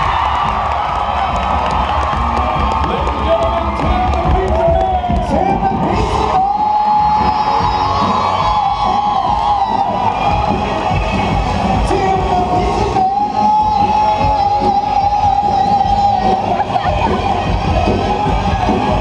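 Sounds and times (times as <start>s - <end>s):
crowd cheering: 0.0s - 19.0s
live band playing: 0.0s - 19.0s.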